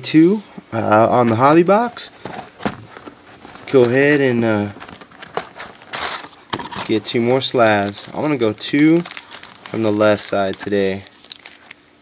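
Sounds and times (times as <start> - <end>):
sharp cardboard rustle: 1.3 - 12.0.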